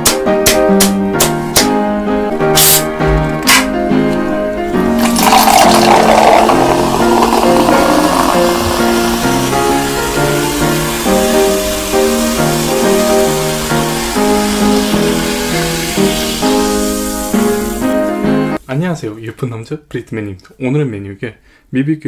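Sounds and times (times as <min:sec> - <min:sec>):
background music: 0:00.0 - 0:18.7
cola pouring into a glass: 0:05.0 - 0:09.7
fizzing hiss of foam: 0:05.0 - 0:18.3.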